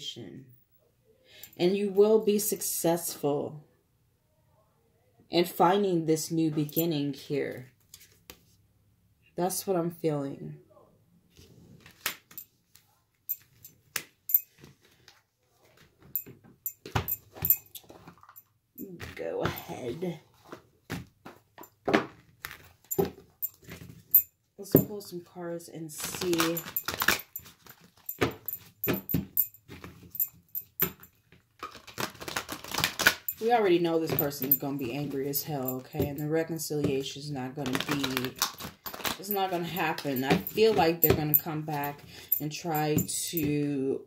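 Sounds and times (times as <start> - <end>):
cards being shuffled: 20.3 - 23.9, 26.0 - 29.0, 31.4 - 34.4, 37.6 - 41.2.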